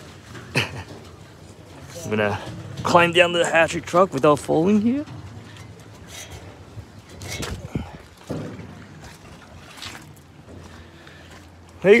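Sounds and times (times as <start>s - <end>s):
short knocks and rustles: 0.0s - 11.6s.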